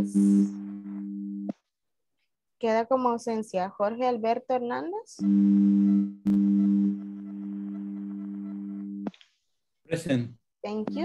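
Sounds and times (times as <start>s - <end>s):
low buzzy electronic tone: 5.2s - 9.1s.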